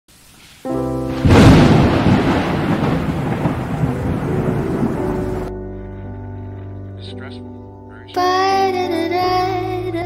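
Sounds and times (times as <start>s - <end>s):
rain-like hiss: 0.1s - 5.5s
music chords: 0.7s - 10.0s
thunder rumble: 1.1s - 5.6s.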